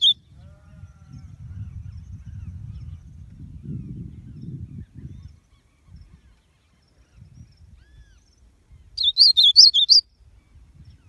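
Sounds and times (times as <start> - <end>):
bird singing high notes: 9.0 - 10.0.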